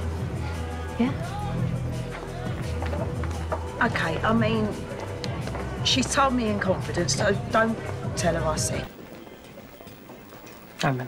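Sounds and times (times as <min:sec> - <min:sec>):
woman speaking: 0:05.9 - 0:08.9.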